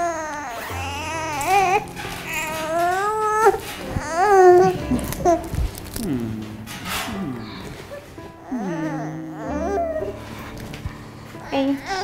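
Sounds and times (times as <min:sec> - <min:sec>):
baby crying: 0:00.0 - 0:06.5, 0:07.1 - 0:10.4, 0:11.3 - 0:12.0.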